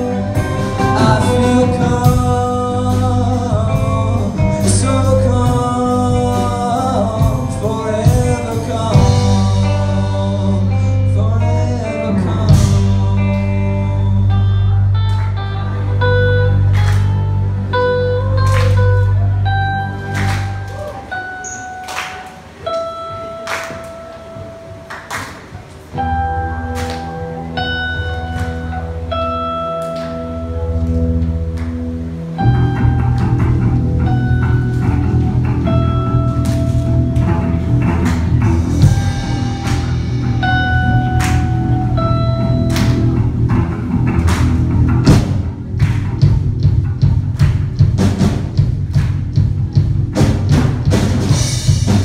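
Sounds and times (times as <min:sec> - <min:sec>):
rock band sustained note: 0:00.0 - 0:25.2, 0:25.9 - 0:52.0.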